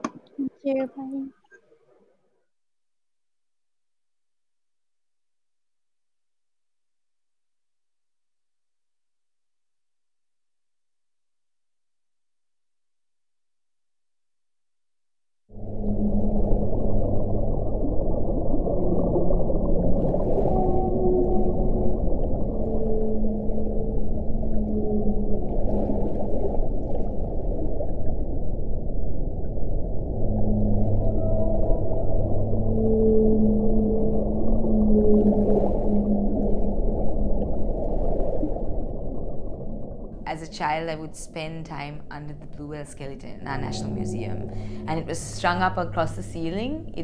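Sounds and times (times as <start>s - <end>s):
whale song moans: 15.5s - 26.8s, 29.9s - 37.5s, 43.4s - 47.0s
muffled underwater rumble: 15.5s - 47.0s.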